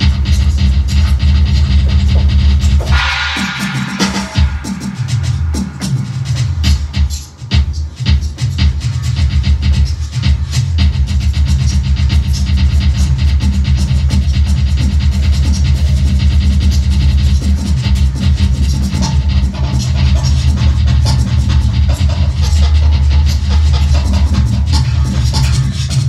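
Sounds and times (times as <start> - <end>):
drum kit played fast: 0.0 - 26.0.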